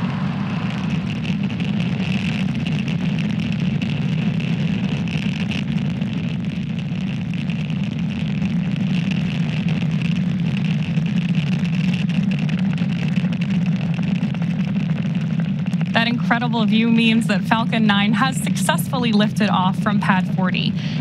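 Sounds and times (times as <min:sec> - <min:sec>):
rocket engines rumbling: 0:00.0 - 0:21.0.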